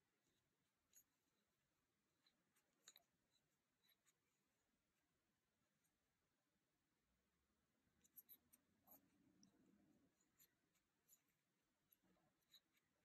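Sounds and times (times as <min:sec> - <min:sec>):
crochet hook clicking and rustling: 0:00.0 - 0:01.5, 0:02.1 - 0:05.1, 0:07.9 - 0:13.0.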